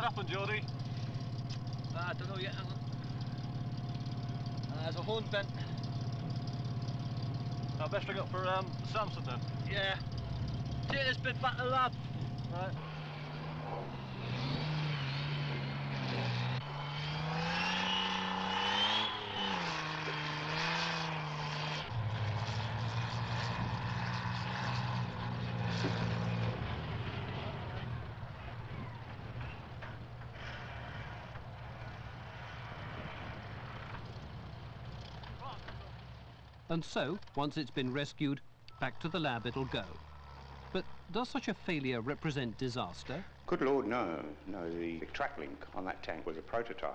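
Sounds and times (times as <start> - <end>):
tracked vehicle engine: 0.0 - 46.9.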